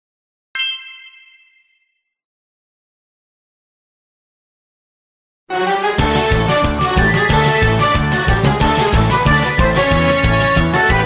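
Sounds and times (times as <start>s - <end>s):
bright metallic ding: 0.6s - 2.0s.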